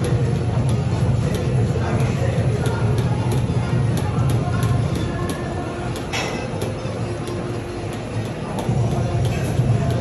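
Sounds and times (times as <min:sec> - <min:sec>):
treadmill belt and motor noise: 0:00.0 - 0:10.0.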